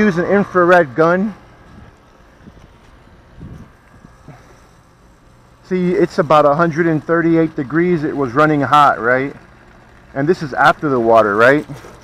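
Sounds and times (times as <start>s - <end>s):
low outdoor rumble: 0.0s - 12.0s
wind on microphone: 1.6s - 4.4s.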